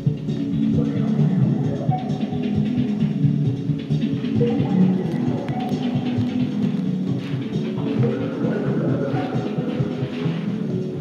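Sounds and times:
drum machine beat: 0.0 - 11.0
synth bass and notes: 0.0 - 11.0.

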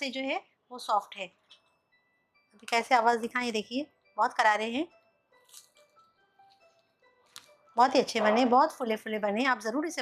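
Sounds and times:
faint bell-like background music: 0.0 - 10.0
crisp fried snack cracking: 5.4 - 6.6.

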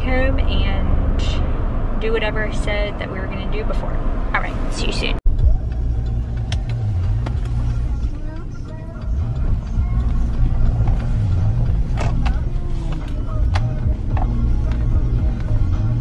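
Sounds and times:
engine and road rumble: 0.0 - 16.0.

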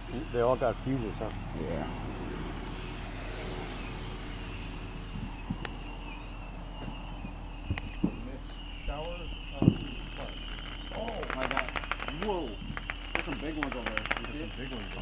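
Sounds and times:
high-pitched drone: 0.0 - 15.0
low firework boom: 3.5 - 8.4, 9.1 - 15.0
distant firework pops: 5.1 - 6.0, 9.0 - 15.0.

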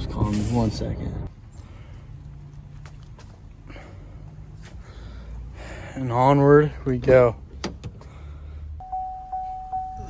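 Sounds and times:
footsteps on pavement: 1.3 - 5.0
low steady hum: 8.4 - 10.0.

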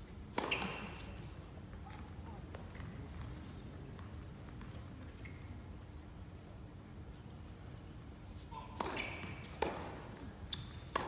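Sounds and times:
racket striking tennis ball: 0.3 - 1.0, 8.8 - 10.0.

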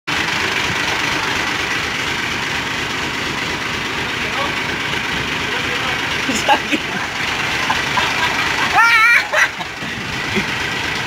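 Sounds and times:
vehicle engine idling: 0.1 - 11.0.

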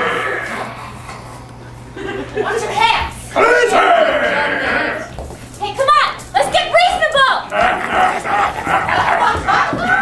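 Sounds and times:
group of voices yelling: 3.4 - 5.1.

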